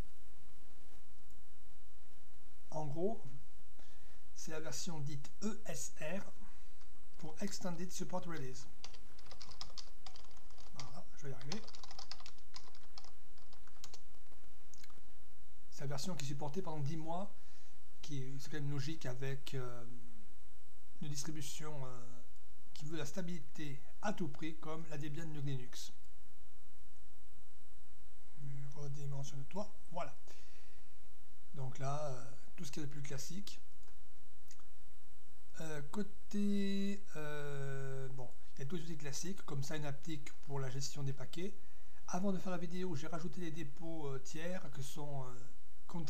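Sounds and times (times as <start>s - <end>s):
steady low hum: 0.0s - 46.0s
man speaking: 2.7s - 3.4s, 4.4s - 6.5s, 7.2s - 8.8s, 10.7s - 11.8s, 15.7s - 17.4s, 18.0s - 20.0s, 21.0s - 26.0s, 28.4s - 30.3s, 31.6s - 33.7s, 35.6s - 46.0s
typing on computer keyboard: 8.8s - 14.4s.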